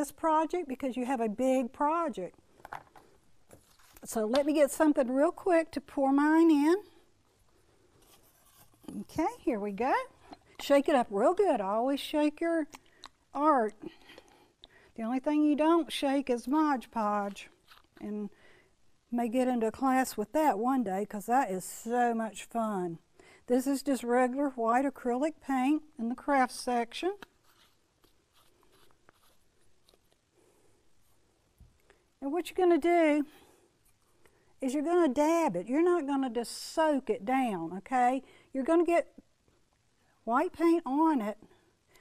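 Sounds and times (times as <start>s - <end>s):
rustling: 2.8s - 4.2s, 7.3s - 10.6s, 17.4s - 18.0s, 27.2s - 31.7s
person speaking: 8.8s - 14.2s, 15.0s - 18.3s.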